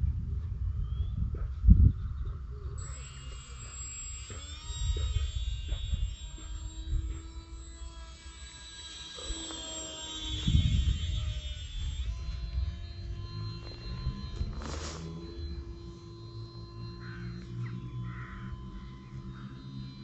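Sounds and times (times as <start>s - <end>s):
wind rumbling on microphone: 0.0s - 16.9s
electric motor and propeller whining: 0.2s - 20.0s.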